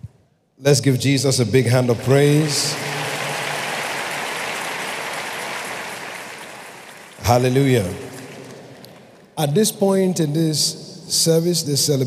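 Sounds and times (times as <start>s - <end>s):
congregation clapping: 1.7s - 9.4s.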